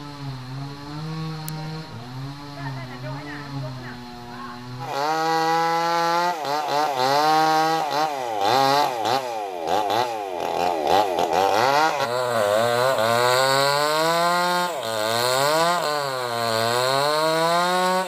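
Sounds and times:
chainsaw revving: 0.0s - 18.0s.

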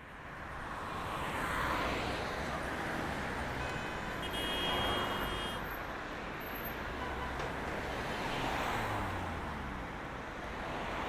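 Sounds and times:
passing cars road noise: 0.0s - 11.0s.

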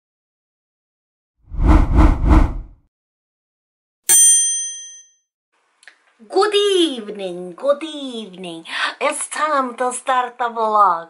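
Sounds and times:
bell-like ding: 4.1s - 5.2s.

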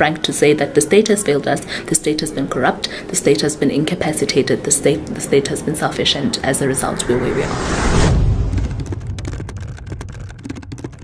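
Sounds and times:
steady low drone: 1.0s - 10.4s
keyboard typing clicks: 8.8s - 11.0s.

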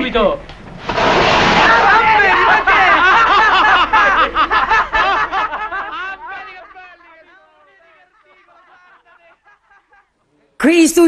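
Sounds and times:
young men laughing: 1.6s - 10.3s.

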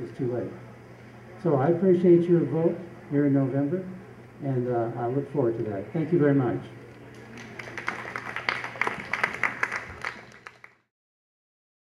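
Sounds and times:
audience applauding: 7.1s - 10.9s.

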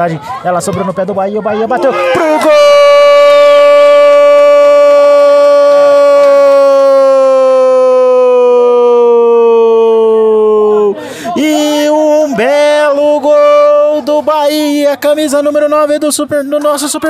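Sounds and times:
commentator shouting goal: 0.4s - 8.0s, 10.1s - 17.0s.

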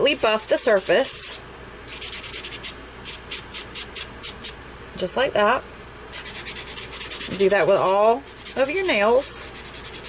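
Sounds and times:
nail buffer scratching: 0.1s - 4.5s, 6.2s - 10.0s.

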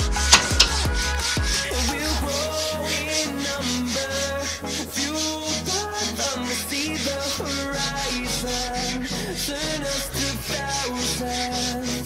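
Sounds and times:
pop song with singing: 0.0s - 12.0s
sandpaper rubbing on wood: 0.3s - 12.0s.

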